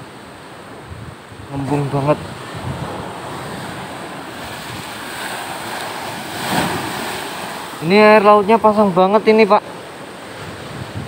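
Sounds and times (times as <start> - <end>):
sea surf breaking on shore: 0.0 - 11.0
wind buffeting microphone: 0.6 - 8.6, 10.2 - 11.0.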